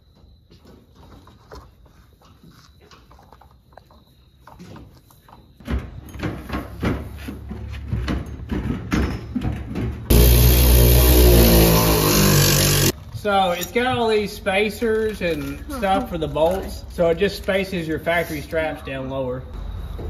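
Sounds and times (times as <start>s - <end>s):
cordless ratchet motor whine: 10.1s - 13.0s.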